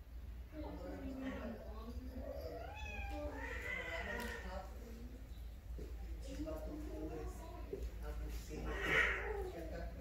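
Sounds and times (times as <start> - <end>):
cat yowling: 2.3 - 4.5, 8.6 - 9.6.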